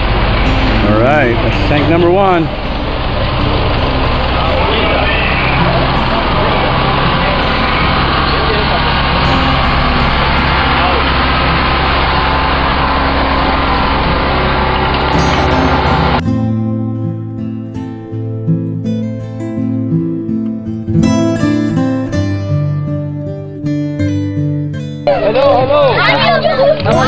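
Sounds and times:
truck engine running: 0.0s - 17.4s, 18.0s - 27.0s
acoustic guitar music: 0.0s - 27.0s
voices in background: 3.8s - 11.4s, 25.1s - 27.0s.

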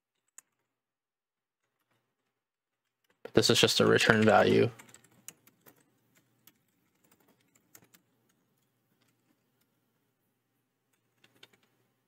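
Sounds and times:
computer keyboard typing: 3.8s - 9.4s, 10.9s - 11.8s.

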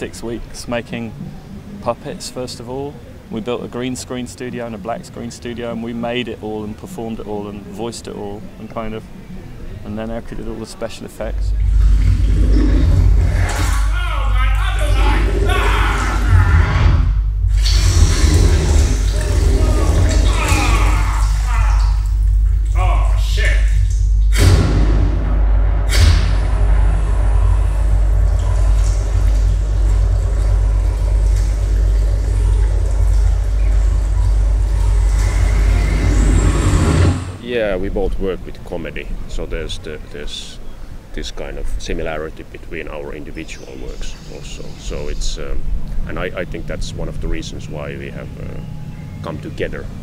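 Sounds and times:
loud low rumbling drone: 11.2s - 38.2s, 44.7s - 50.0s
sharp crack: 23.7s - 31.8s.

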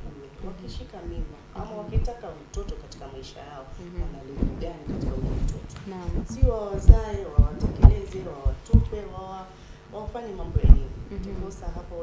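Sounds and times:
woman talking: 0.0s - 12.0s
dull low thumps: 1.0s - 2.8s, 3.8s - 9.4s, 10.1s - 11.9s.

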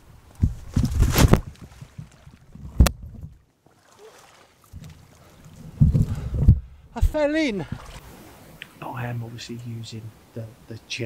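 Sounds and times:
water splashing: 0.3s - 9.1s.

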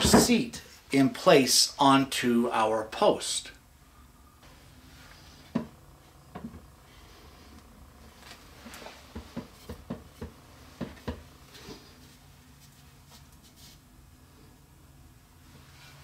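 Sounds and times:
wooden knocks and taps: 9.1s - 11.2s.

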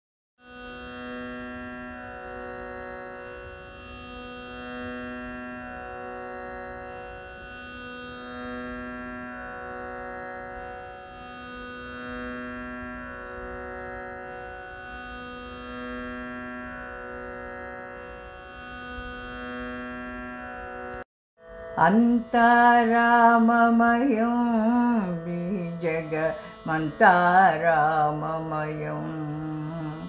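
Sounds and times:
tanpura drone: 0.4s - 30.0s
sustained drone tones: 21.7s - 30.0s.

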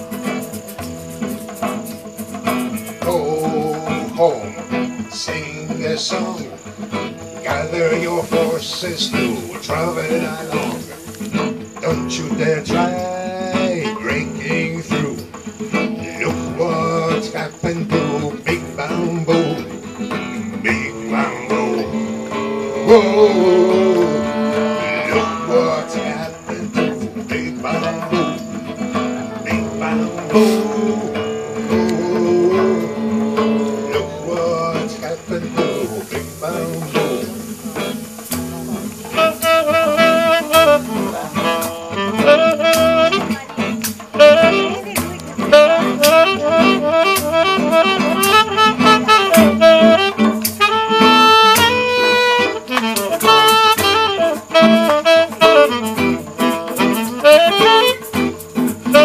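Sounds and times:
hand drum: 0.0s - 59.0s
strummed acoustic guitar: 0.0s - 59.0s
harmonica: 19.1s - 59.0s
tenor saxophone: 19.5s - 59.0s.

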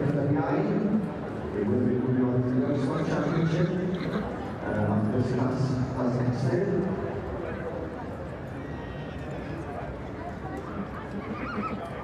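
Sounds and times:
murmur of voices: 0.0s - 12.0s
horse whinnying: 11.3s - 12.0s.

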